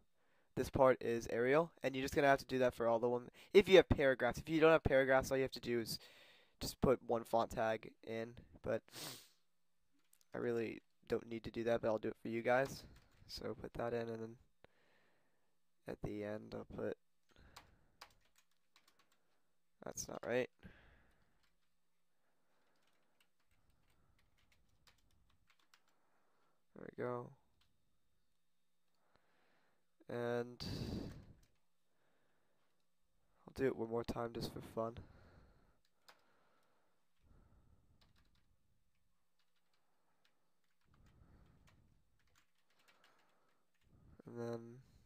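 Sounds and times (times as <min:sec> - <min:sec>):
computer keyboard typing: 0:12.6 - 0:13.3, 0:17.3 - 0:19.4, 0:21.1 - 0:21.7, 0:22.6 - 0:26.0, 0:35.8 - 0:36.3, 0:37.9 - 0:43.9.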